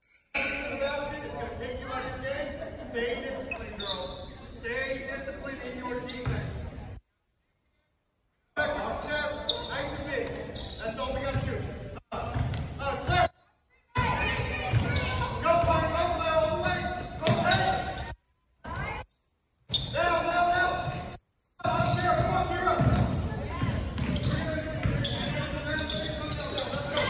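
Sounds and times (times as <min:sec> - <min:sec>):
basketball bouncing: 0:12.3 - 0:12.7, 0:14.0 - 0:15.9, 0:21.7 - 0:25.3
voices shouting: 0:14.0 - 0:18.1.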